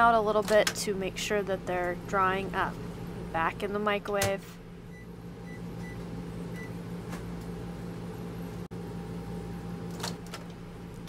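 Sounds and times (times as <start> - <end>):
low hum: 0.9 - 11.0
microwave keypad beeps: 4.9 - 6.8.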